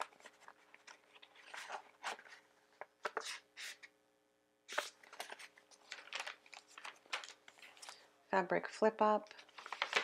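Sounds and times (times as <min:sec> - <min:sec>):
paper pages rustling: 0:00.0 - 0:03.9, 0:04.7 - 0:08.0, 0:09.3 - 0:10.0.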